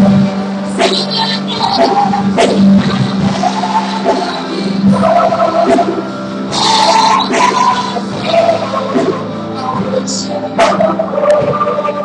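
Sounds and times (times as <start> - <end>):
drums: 0.0 - 12.0
keyboards: 0.0 - 12.0
people singing: 0.0 - 12.0.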